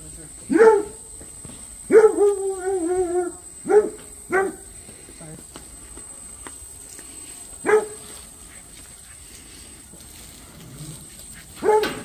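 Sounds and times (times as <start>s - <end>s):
dog barking: 0.5s - 1.0s, 1.9s - 4.7s, 7.6s - 8.1s, 11.6s - 12.0s
dog howling: 1.9s - 4.6s.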